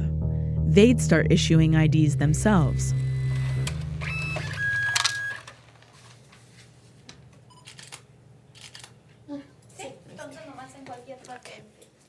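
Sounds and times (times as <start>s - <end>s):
steady electronic tone: 0.0s - 5.9s.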